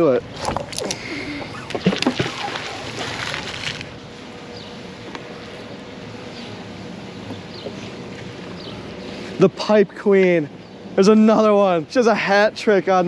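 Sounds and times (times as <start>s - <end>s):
magnet splashing into river: 1.7s - 3.8s.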